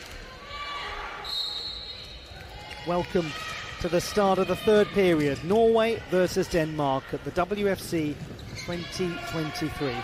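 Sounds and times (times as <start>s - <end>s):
referee's whistle blast: 1.2s - 2.2s.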